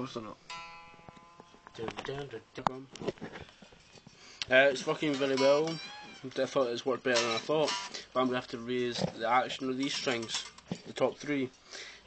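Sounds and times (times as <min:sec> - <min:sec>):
man talking: 0:00.0 - 0:00.4, 0:01.7 - 0:03.0, 0:04.4 - 0:11.6
guitar chord ringing: 0:00.1 - 0:02.4.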